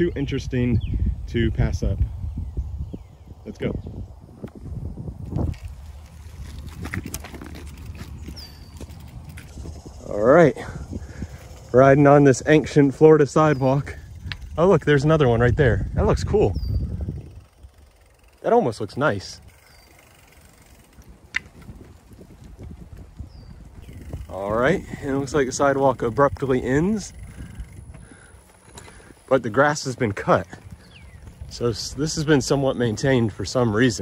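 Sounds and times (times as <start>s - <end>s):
wind buffeting microphone: 0.0s - 34.0s
bike tyres rumbling on concrete: 4.2s - 12.8s, 13.5s - 34.0s.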